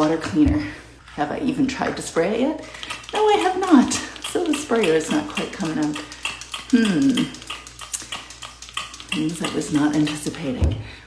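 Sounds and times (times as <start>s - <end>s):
spray bottle clicking and sputtering: 2.6s - 10.6s.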